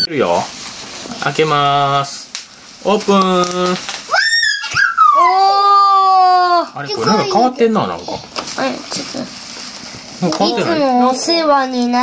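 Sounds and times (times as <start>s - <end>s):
high-pitched vocal cry: 4.1s - 7.4s.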